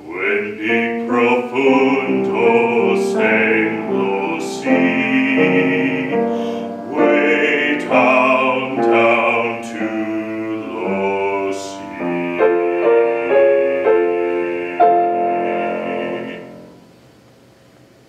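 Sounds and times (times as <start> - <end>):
male classical singer: 0.0 - 16.8
piano chords: 0.0 - 17.1.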